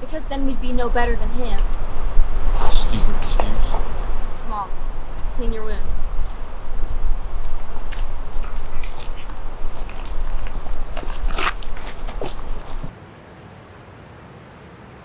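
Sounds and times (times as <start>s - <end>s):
steady low rumble: 0.0s - 12.9s
footsteps on dirt trail: 6.2s - 12.9s
loud crackle: 7.4s - 12.9s
bag and clothing rustling: 7.8s - 12.9s.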